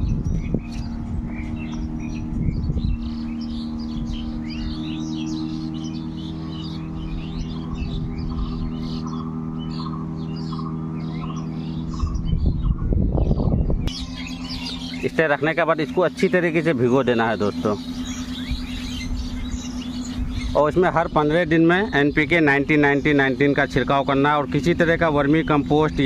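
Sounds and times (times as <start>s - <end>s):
higher tonal notes: 0.0s - 26.0s
low droning hum: 0.0s - 26.0s
small birds chirping: 0.0s - 26.0s.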